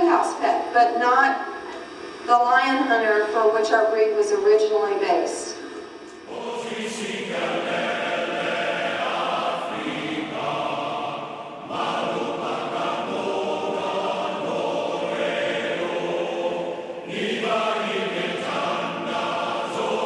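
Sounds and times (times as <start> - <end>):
choir singing held chords: 5.9 - 20.0.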